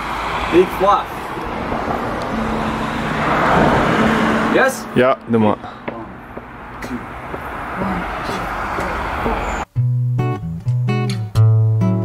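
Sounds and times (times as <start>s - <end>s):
road traffic rushing: 0.0s - 9.7s.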